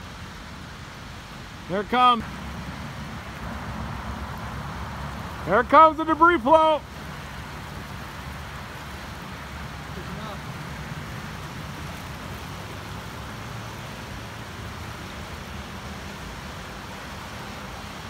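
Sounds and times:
churning water rushing: 0:00.0 - 0:18.0.

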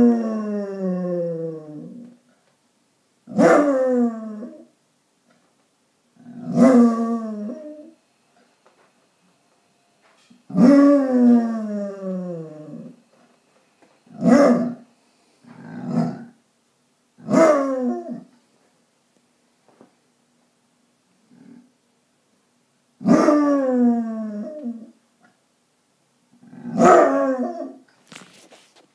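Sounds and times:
dog howling: 0:06.4 - 0:08.0, 0:10.5 - 0:13.0, 0:23.0 - 0:24.9, 0:26.8 - 0:27.8.

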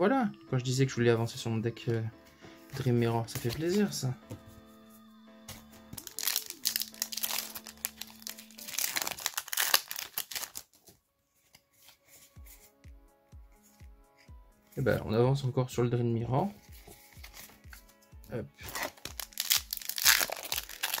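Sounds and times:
faint background music: 0:00.0 - 0:21.0
foil pack crinkling and tearing: 0:06.0 - 0:10.9, 0:18.6 - 0:21.0.

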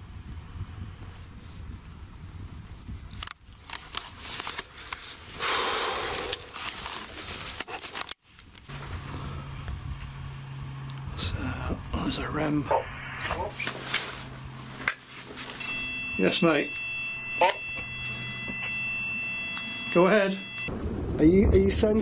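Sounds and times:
camera handling clicks and scrapes: 0:03.1 - 0:05.1, 0:06.6 - 0:08.6
low steady hum: 0:08.3 - 0:21.2.

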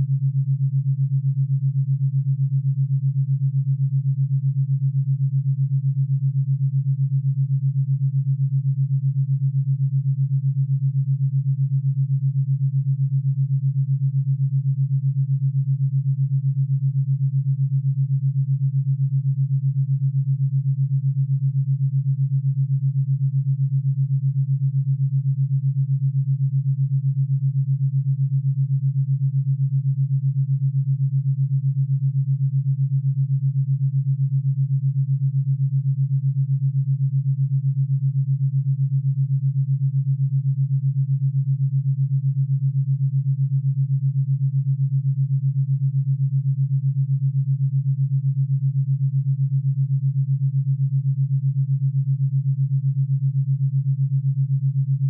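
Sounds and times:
pulsing low pure tone: 0:00.0 - 0:55.0.

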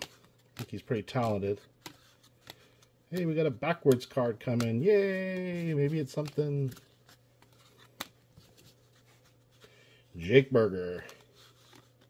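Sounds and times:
cards rustling against each other: 0:00.0 - 0:12.0.

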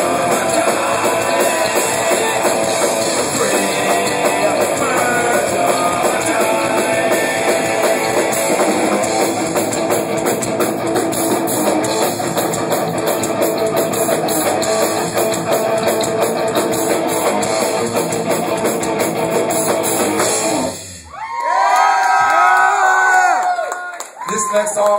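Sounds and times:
live rock band playing: 0:00.0 - 0:21.1
crowd cheering and whooping: 0:21.0 - 0:24.9.

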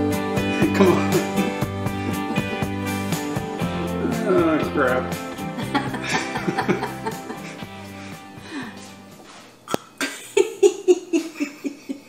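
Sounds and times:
background music: 0:00.0 - 0:09.4
woman laughing hard: 0:00.5 - 0:02.7, 0:05.3 - 0:07.8, 0:10.0 - 0:12.0.

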